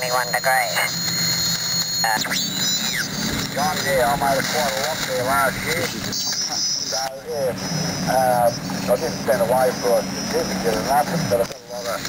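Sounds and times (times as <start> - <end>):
distant voice over radio: 0.0 - 1.0, 3.4 - 12.0
radio hiss and band noise: 0.0 - 12.0.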